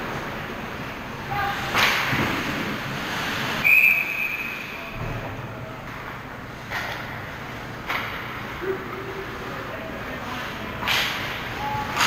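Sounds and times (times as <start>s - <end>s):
referee's whistle blast: 3.6s - 4.8s.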